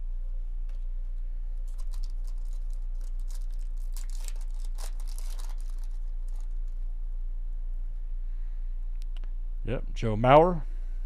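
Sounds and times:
low hum: 0.0 - 11.0
foil wrapper tearing and crinkling: 1.7 - 6.8.

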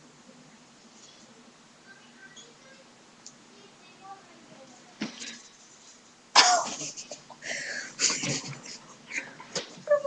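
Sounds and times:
boy giggling: 6.5 - 10.0.

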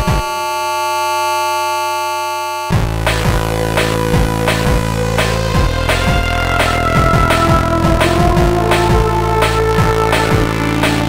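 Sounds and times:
buzzy synthesizer chord: 0.0 - 11.0
low hum: 2.7 - 11.0.

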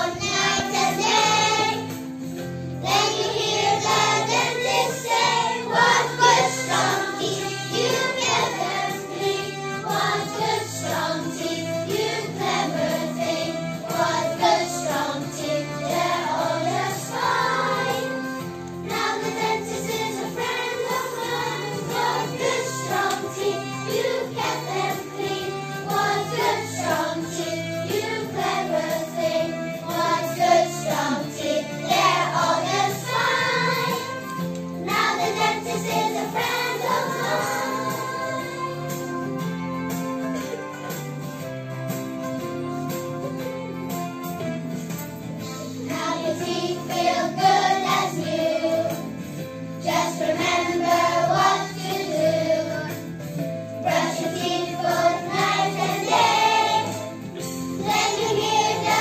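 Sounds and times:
young children singing: 0.0 - 2.0, 2.8 - 39.4, 45.8 - 49.1, 49.8 - 53.1, 53.8 - 57.1, 57.8 - 59.0
accompanying music: 0.0 - 59.0.

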